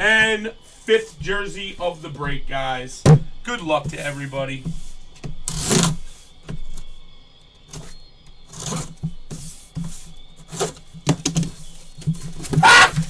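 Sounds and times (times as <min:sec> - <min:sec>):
cardboard flaps rustling: 0:07.7 - 0:13.0.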